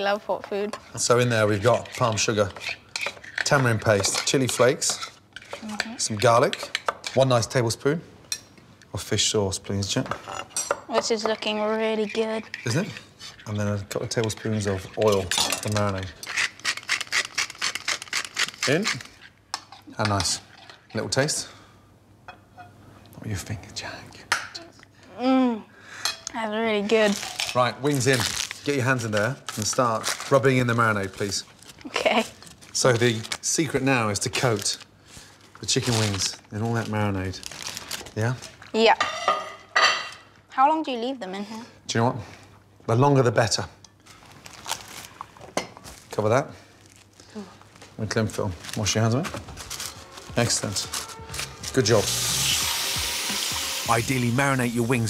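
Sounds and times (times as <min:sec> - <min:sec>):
pepper mill grinding: 0:00.9 - 0:07.3, 0:12.1 - 0:19.3, 0:48.8 - 0:55.0
cling film crinkling: 0:27.0 - 0:38.8, 0:44.0 - 0:46.2, 0:46.8 - 0:55.0.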